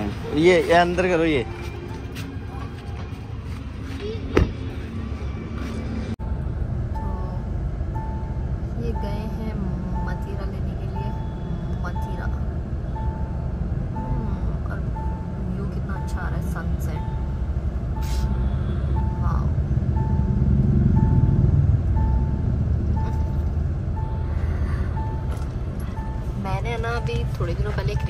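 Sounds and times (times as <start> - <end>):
street traffic rumble: 0.0 - 28.0
electronic beeps: 7.0 - 28.0.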